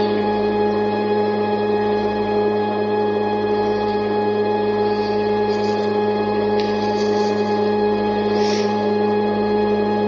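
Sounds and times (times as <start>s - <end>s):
steady musical drone: 0.0s - 10.0s.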